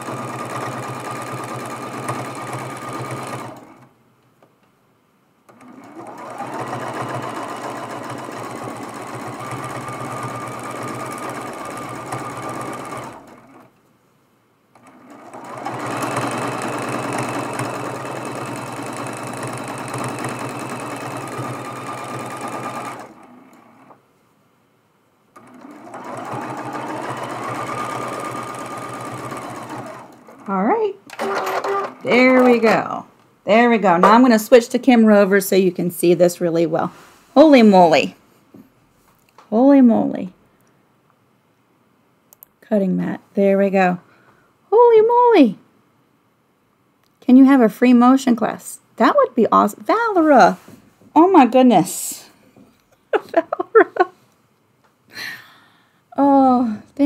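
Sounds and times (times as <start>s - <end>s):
sewing machine humming: 0.0s - 3.9s, 5.5s - 13.7s, 14.8s - 23.9s, 25.4s - 32.8s.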